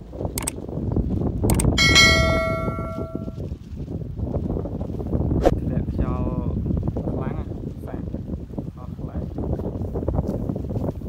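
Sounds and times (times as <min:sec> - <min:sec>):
click: 0:01.5 - 0:01.8
notification bell chime: 0:01.8 - 0:03.4.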